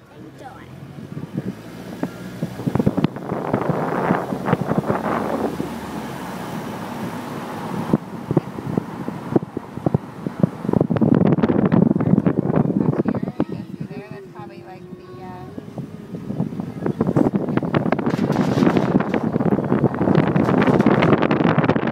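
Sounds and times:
road and wind noise in car: 0:00.0 - 0:21.9
indistinct voices: 0:06.8 - 0:21.2.

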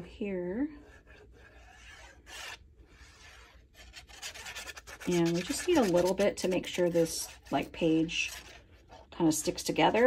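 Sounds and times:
bottle scraping on cardstock: 0:01.1 - 0:09.6.

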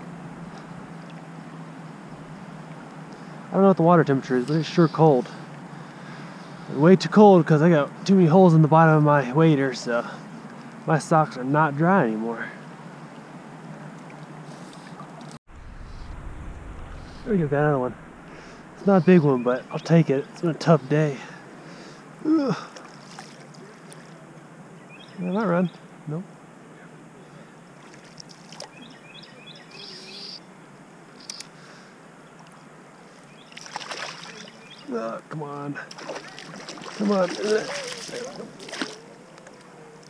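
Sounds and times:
low moving water: 0:00.0 - 0:40.0
river current rushing: 0:13.4 - 0:19.5, 0:33.5 - 0:34.8, 0:35.9 - 0:39.5
low rumble: 0:15.5 - 0:19.7
water splashing: 0:22.5 - 0:24.2, 0:27.8 - 0:28.8, 0:33.4 - 0:34.8, 0:35.8 - 0:39.7.

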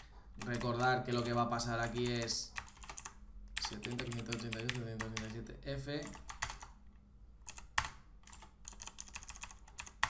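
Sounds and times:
keyboard typing clicks: 0:06.0 - 0:06.8, 0:07.4 - 0:10.0.

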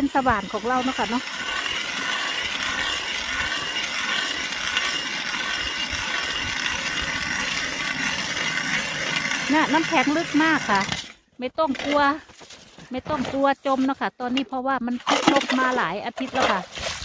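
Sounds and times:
ice auger grinding into ice: 0:00.0 - 0:17.0.

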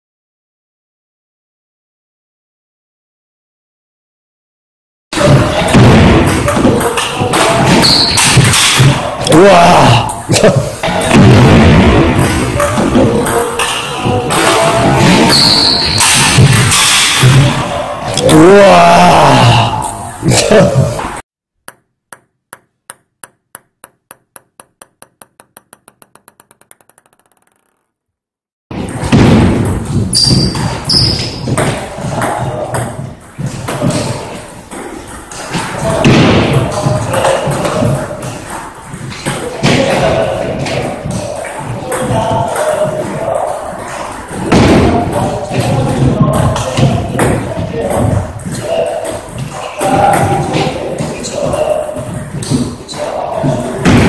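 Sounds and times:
indistinct voices: 0:05.2 - 0:11.2, 0:12.0 - 0:21.2, 0:31.6 - 0:54.0
table tennis ball bouncing: 0:21.6 - 0:28.0.

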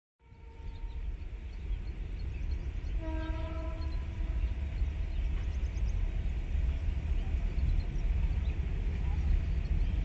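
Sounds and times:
locomotive horn: 0:03.0 - 0:04.4.

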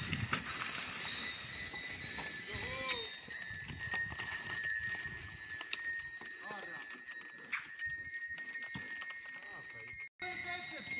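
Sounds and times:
oxen bells ringing: 0:00.0 - 0:10.9.

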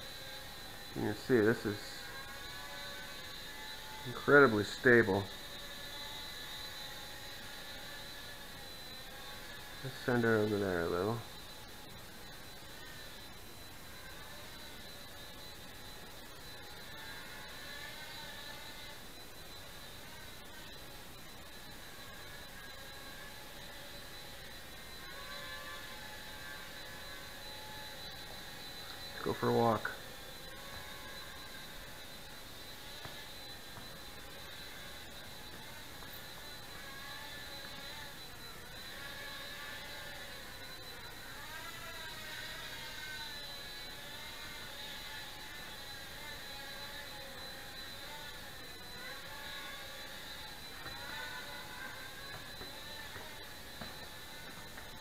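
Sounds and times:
small drone motors whirring: 0:00.0 - 0:55.0
thin high tone: 0:08.0 - 0:41.2.

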